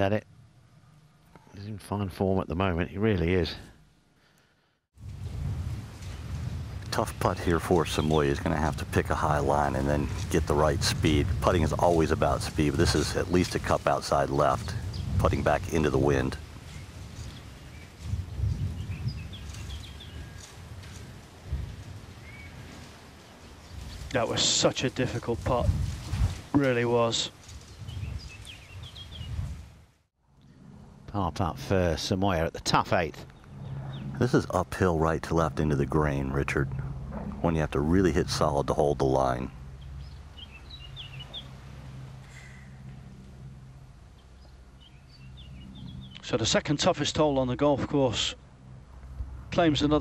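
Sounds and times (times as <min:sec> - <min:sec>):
low outdoor background hum: 0:00.0 - 0:50.0
wind rumbling on microphone: 0:05.0 - 0:46.2, 0:47.8 - 0:50.0
small bird chirping: 0:16.6 - 0:20.6, 0:39.6 - 0:43.0, 0:44.1 - 0:46.3.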